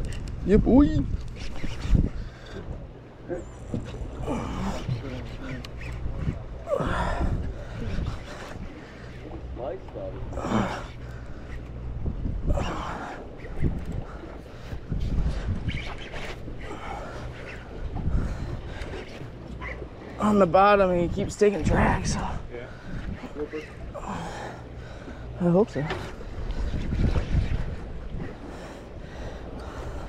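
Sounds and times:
wind on microphone: 0:00.0 - 0:03.0, 0:03.6 - 0:20.0, 0:20.9 - 0:30.0
boat machinery drone: 0:00.0 - 0:30.0.

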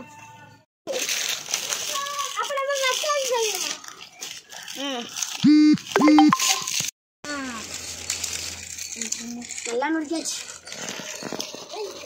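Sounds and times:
child speaking: 0:01.8 - 0:03.8, 0:09.2 - 0:10.4, 0:11.7 - 0:12.0.

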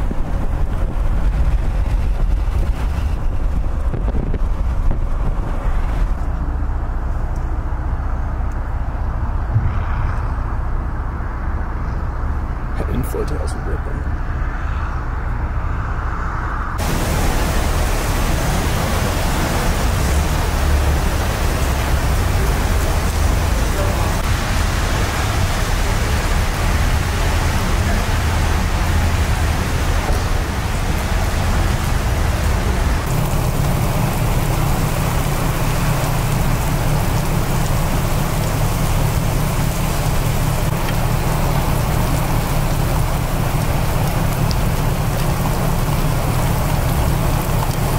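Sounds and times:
heavy rain on concrete: 0:00.0 - 0:07.4, 0:16.8 - 0:47.9.

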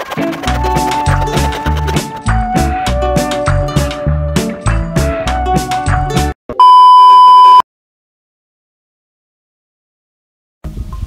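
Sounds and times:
intro music: 0:00.0 - 0:06.4
steady electronic beep: 0:06.6 - 0:07.6.

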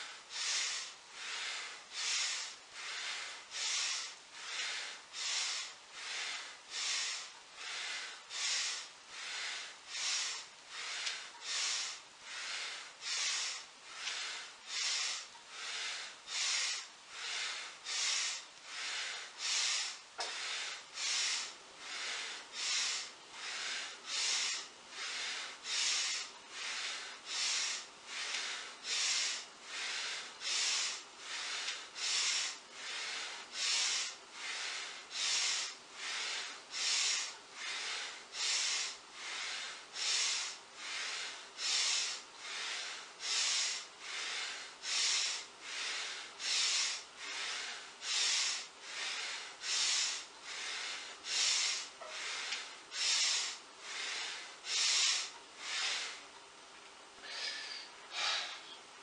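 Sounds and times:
person breathing heavily: 0:00.0 - 0:56.3, 0:57.2 - 0:58.9.

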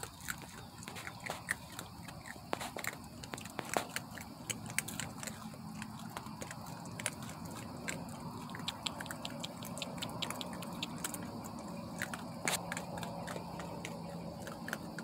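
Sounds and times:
raccoons crunching dry food: 0:00.0 - 0:15.0.

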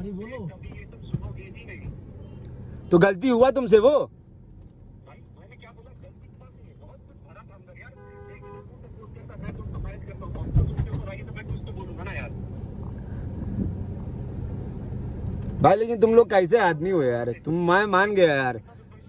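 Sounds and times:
road traffic rumble: 0:00.0 - 0:19.0
car horn toot: 0:07.9 - 0:08.7.

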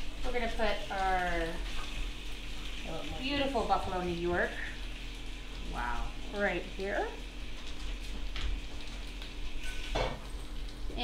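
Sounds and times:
pan sizzling: 0:00.0 - 0:11.0.

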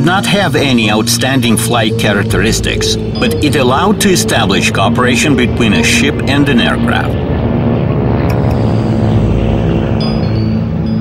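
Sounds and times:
engine drone: 0:00.0 - 0:11.0.

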